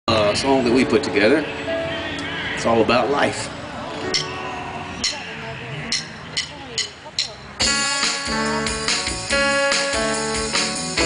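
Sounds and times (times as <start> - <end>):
rock band playing: 7.6 - 11.0.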